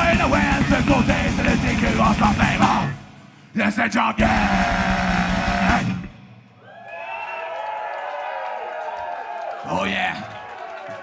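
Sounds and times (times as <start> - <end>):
singer yelling: 3.6 - 6.0
heavy metal band final chord: 4.2 - 6.2
crowd cheering and whooping: 6.5 - 11.0.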